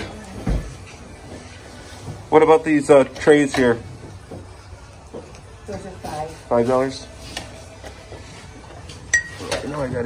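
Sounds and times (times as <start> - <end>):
glassware tapping: 9.1 - 9.4.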